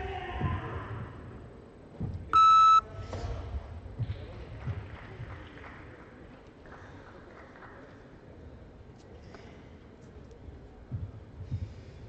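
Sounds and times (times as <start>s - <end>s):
electronic beep: 2.4s - 2.8s.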